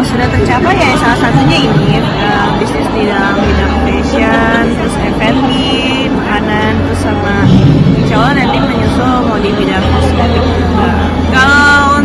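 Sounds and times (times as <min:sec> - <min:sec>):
crowded hall background noise: 0:00.0 - 0:12.0
woman talking: 0:00.0 - 0:12.0.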